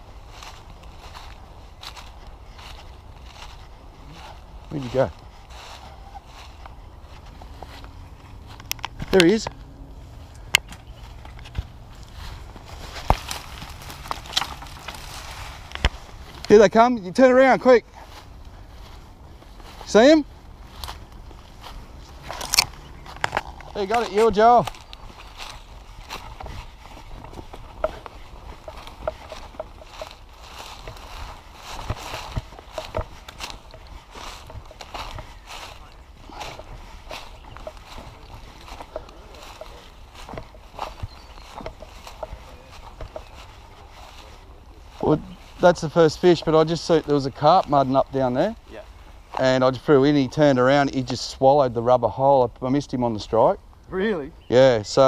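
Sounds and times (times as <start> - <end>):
footsteps through scrub: 0.0 - 52.2
leaves and brush rustling: 0.0 - 55.0
twigs snapping: 6.3 - 9.7, 10.3 - 16.5, 20.7 - 45.1.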